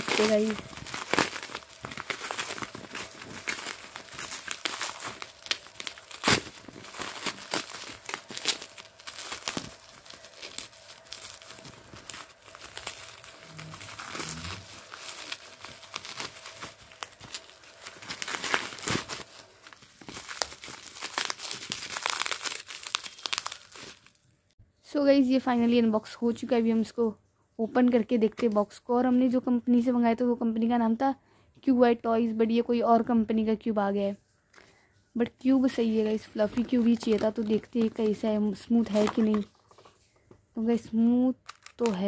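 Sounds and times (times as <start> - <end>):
bubble wrap crinkling: 0.0 - 24.6, 35.4 - 42.0.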